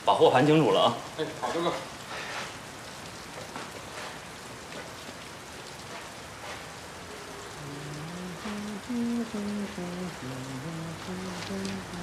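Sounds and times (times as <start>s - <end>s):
light rain hiss: 0.0s - 12.0s.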